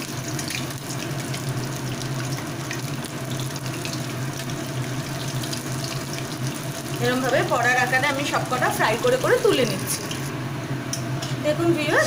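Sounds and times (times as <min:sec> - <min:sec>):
deep-frying sizzle in oil: 0:00.0 - 0:12.0.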